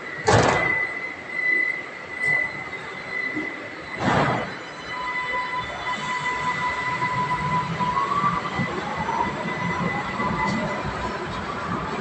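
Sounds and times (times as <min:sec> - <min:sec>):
metro train whine and rumble: 0:00.0 - 0:12.0.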